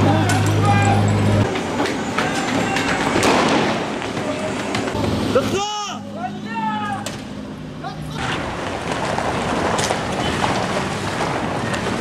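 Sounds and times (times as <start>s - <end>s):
sharp bangs: 0.0s - 5.0s.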